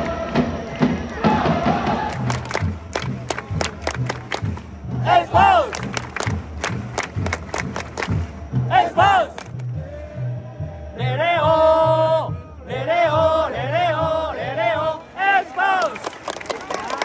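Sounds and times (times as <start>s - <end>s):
steady drum beat: 1.2s - 14.8s
crowd shouting together: 4.9s - 5.9s, 8.6s - 16.0s.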